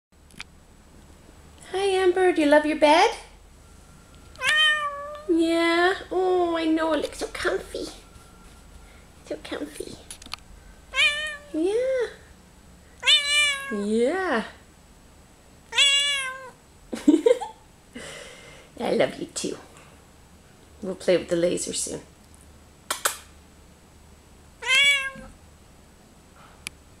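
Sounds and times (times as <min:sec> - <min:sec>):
cat meowing: 0:04.4 - 0:05.3, 0:10.9 - 0:11.6, 0:13.0 - 0:13.8, 0:15.7 - 0:16.6, 0:24.6 - 0:25.4
double click: 0:22.9 - 0:23.3.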